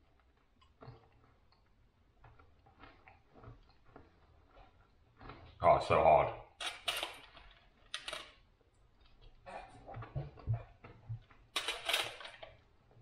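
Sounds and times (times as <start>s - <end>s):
crunching chocolate being chewed: 0.0s - 6.6s.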